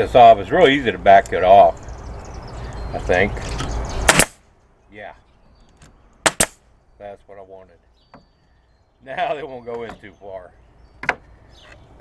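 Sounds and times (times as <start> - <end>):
nail gun firing: 4.1 - 4.4, 6.3 - 6.6.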